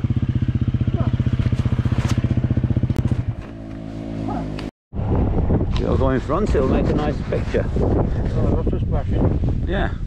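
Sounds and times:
motorcycle engine idling: 0.0s - 4.4s.

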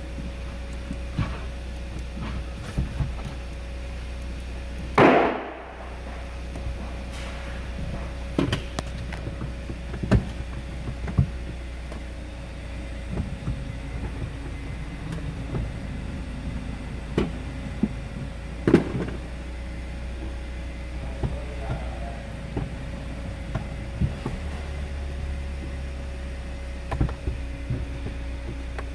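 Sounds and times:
car engine idling: 0.0s - 28.9s
gear selector clicks and knocks: 0.2s - 3.6s
loud thump: 5.0s - 6.2s.

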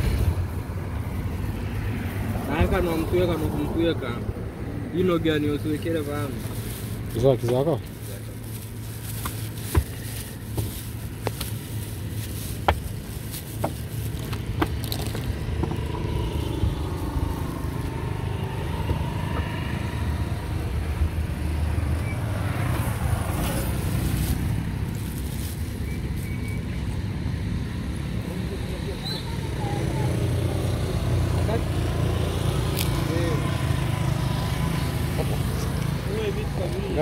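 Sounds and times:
vehicle passing: 0.0s - 10.4s, 11.8s - 26.1s, 27.2s - 37.0s
traffic rumble: 0.0s - 37.0s
wind: 0.0s - 37.0s
plastic bag crinkling: 5.8s - 18.0s, 23.4s - 26.2s.

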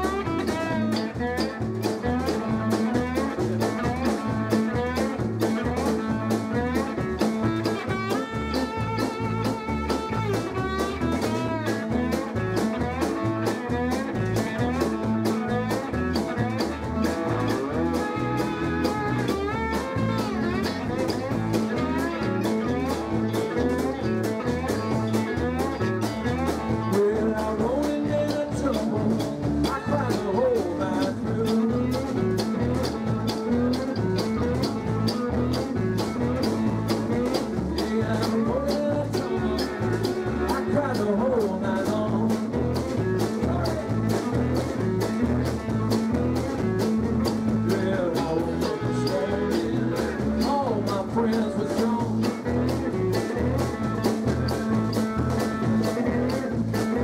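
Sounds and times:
drum kit beat: 0.0s - 57.0s
electric guitars: 0.0s - 57.0s.

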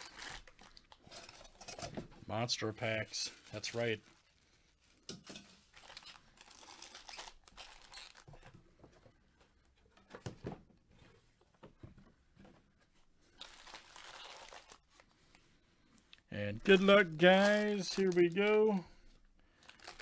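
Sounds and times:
foil card packs crinkling: 0.0s - 1.1s, 2.8s - 4.4s, 5.7s - 8.5s, 13.3s - 15.4s, 16.5s - 20.0s.

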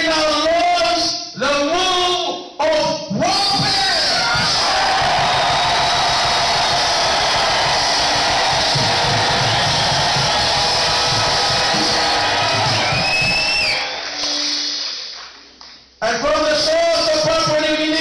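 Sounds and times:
crowd shouting and cheering: 3.5s - 15.0s.

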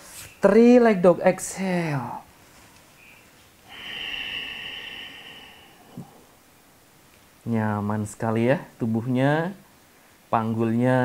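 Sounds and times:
person breathing out: 3.6s - 6.5s.

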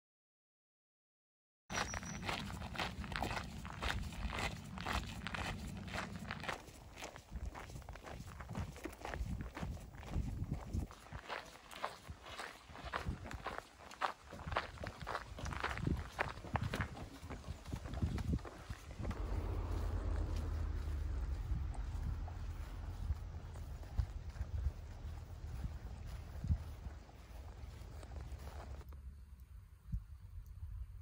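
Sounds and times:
footsteps on a path: 1.7s - 28.9s
low rumble: 1.9s - 7.1s, 17.8s - 28.8s.

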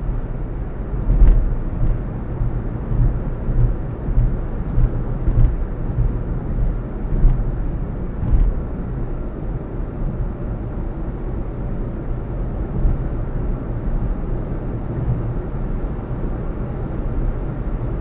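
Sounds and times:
road and engine rumble: 0.0s - 18.0s
knocks and thumps from road bumps: 0.9s - 8.8s, 12.7s - 13.2s, 14.9s - 15.4s.

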